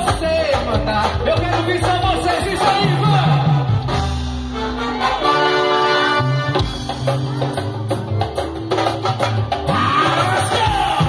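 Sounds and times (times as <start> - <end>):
live band playing carnival music: 0.0 - 11.0.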